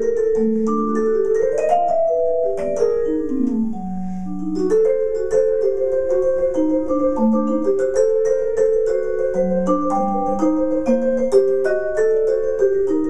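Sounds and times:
jazz vibraphone played with mallets: 0.0 - 13.0.

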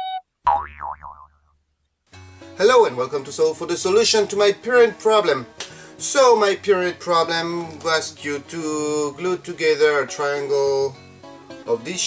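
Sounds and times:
cartoon boing: 0.0 - 1.5.

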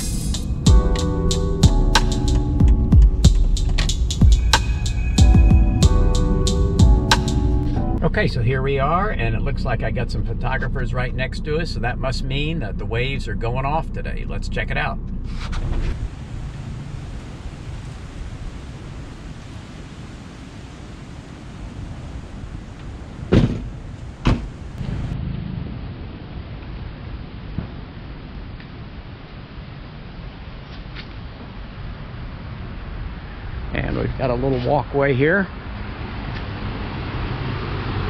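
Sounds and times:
outdoor background noise: 0.0 - 38.0
car liftgate slamming shut: 23.3 - 24.6.

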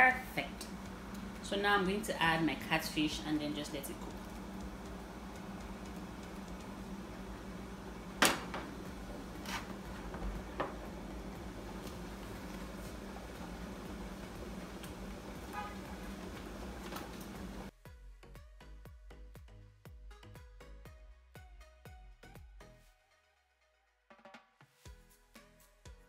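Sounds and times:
low room hum: 0.0 - 17.7
background music with a beat: 17.7 - 22.8, 24.1 - 26.0.

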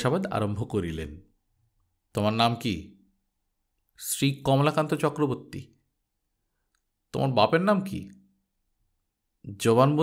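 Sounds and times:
man reading aloud: 0.0 - 1.4, 2.1 - 3.1, 3.9 - 5.8, 7.0 - 8.2, 9.4 - 10.0.

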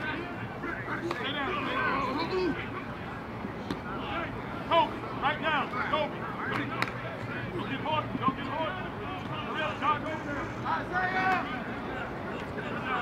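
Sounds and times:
people shouting and calling out: 0.0 - 3.2, 3.8 - 13.0.

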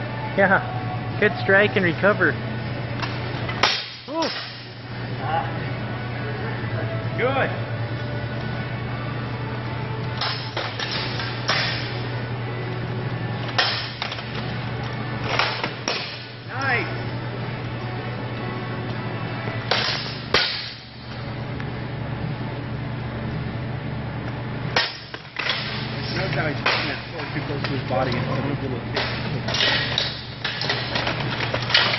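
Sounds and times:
low steady hum: 0.0 - 31.9
swords clanging on metal: 3.6 - 4.7, 10.2 - 12.0, 13.5 - 14.2, 19.7 - 20.9.

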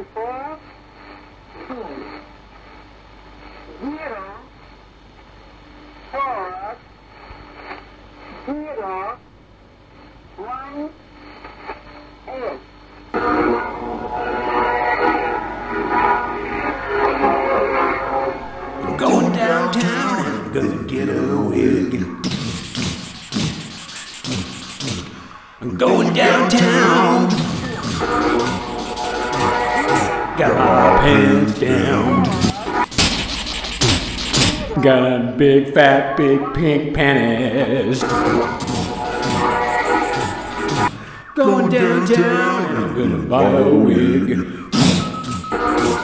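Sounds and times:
constant low hum: 9.2 - 35.4
steady hiss: 14.0 - 35.0
person reading out a digit: 18.8 - 24.8, 25.7 - 34.8
beatbox hits with low boom: 22.2 - 25.4, 27.3 - 30.2, 32.2 - 34.8, 44.7 - 46.0.

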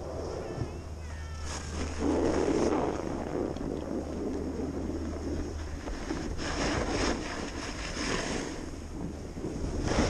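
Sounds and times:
snowboard sliding over snow: 0.0 - 10.0
wind on microphone: 0.0 - 10.0.

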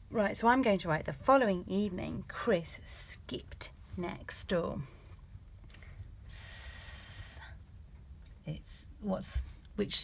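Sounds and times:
woman hissing s sound: 6.3 - 7.5.

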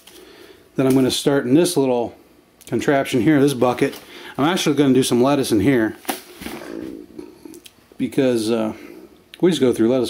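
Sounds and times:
man breathing: 0.0 - 0.7, 4.0 - 4.4.

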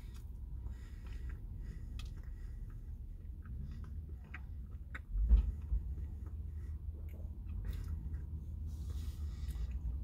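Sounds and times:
person chewing food: 0.0 - 10.0.

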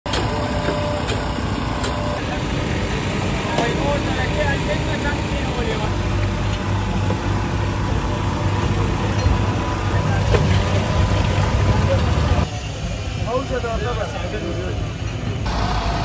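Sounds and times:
traffic hum: 0.1 - 16.0.

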